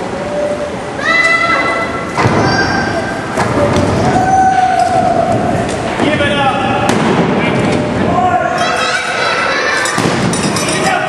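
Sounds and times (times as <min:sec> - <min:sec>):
spectators shouting and yelling: 0:01.0 - 0:05.9, 0:07.8 - 0:11.0.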